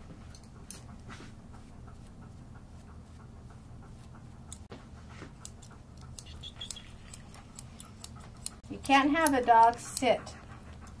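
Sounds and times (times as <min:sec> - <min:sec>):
grooming shears snipping: 0:01.9 - 0:11.0.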